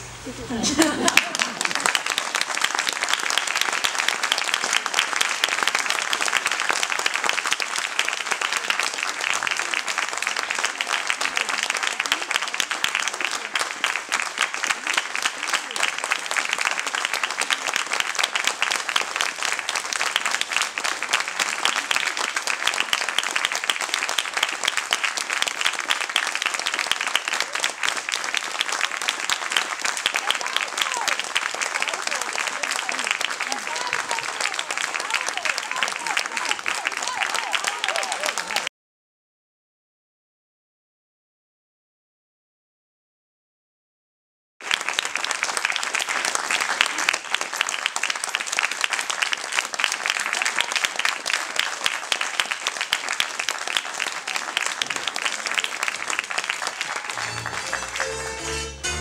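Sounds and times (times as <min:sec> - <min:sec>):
audience applauding: 0:00.0 - 0:38.7, 0:44.6 - 0:59.0.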